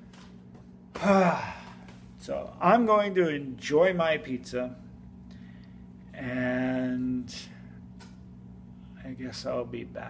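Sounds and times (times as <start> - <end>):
man sighing: 0.9 - 2.0.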